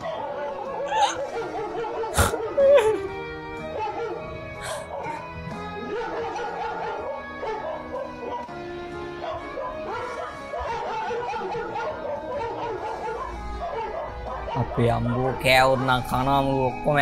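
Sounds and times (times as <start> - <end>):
dog barking: 0.0 - 2.6, 3.6 - 16.2
background music: 0.0 - 17.0.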